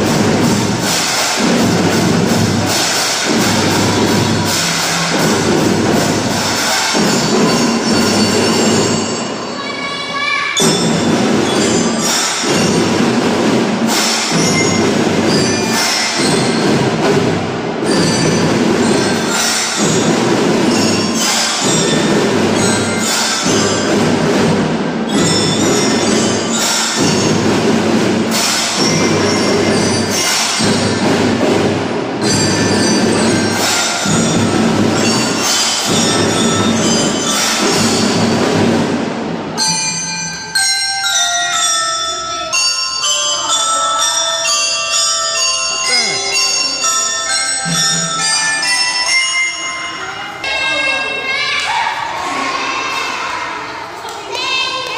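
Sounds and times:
ringing bell-like notes: 0.0s - 24.2s, 25.0s - 38.9s, 39.6s - 53.0s
children's drum band playing: 0.0s - 54.9s.

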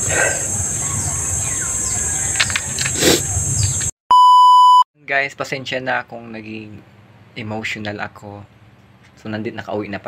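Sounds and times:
electronic beep tone: 4.1s - 4.8s.

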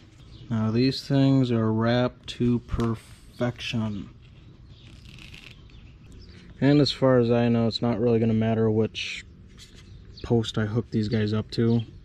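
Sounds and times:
faint birds chirping: 0.0s - 12.0s.

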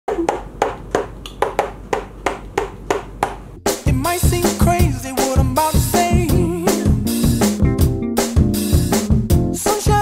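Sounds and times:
music: 3.6s - 10.0s.

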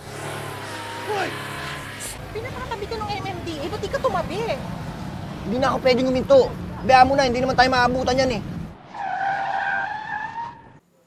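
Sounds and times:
high-pitched squeal: 0.0s - 4.8s.

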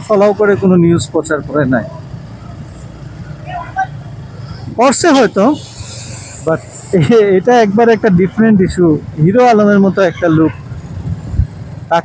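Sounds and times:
motorcycle engine and road rumble: 0.0s - 12.0s
wind noise: 10.5s - 11.8s.

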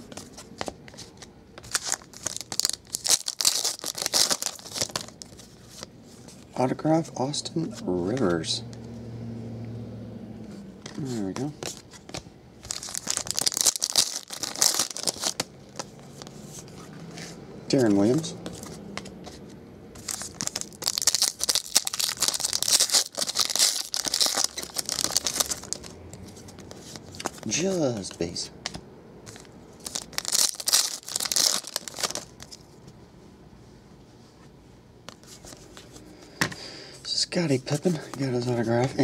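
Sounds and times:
foil wrapper tearing and crinkling: 1.6s - 5.3s, 12.6s - 15.5s, 20.0s - 25.9s, 29.8s - 32.6s.

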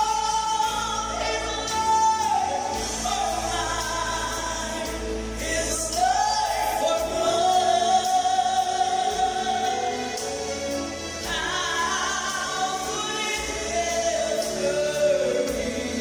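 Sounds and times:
musical accompaniment: 0.0s - 16.0s
woman singing gospel: 0.0s - 16.0s.

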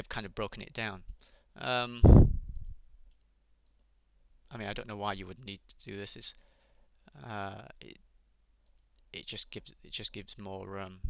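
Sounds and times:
low thud on microphone: 2.0s - 2.6s
computer mouse clicks: 2.6s - 3.9s.

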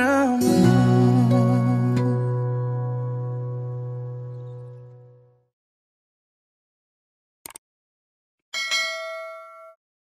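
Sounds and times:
bright bell chime: 8.6s - 9.8s.

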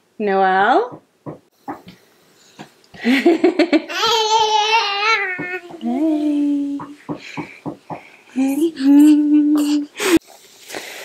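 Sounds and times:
toddler vocalizing: 3.9s - 5.8s.

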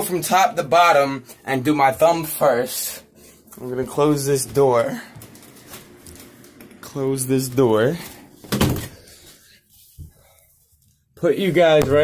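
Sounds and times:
door thudding shut: 8.4s - 9.0s.

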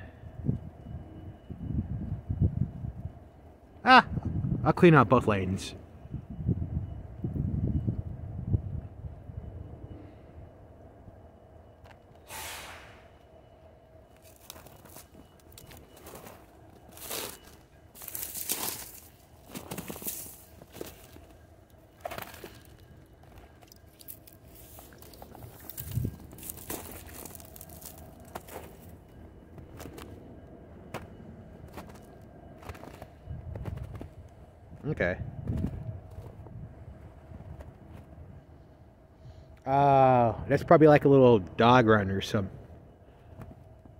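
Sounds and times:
freight train rumbling on bridge: 0.0s - 43.0s
footsteps crunching through snow: 14.2s - 21.4s, 22.0s - 29.0s.

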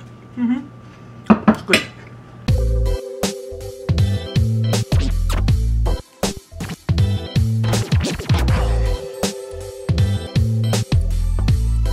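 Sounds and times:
upbeat electronic music: 2.5s - 11.9s.

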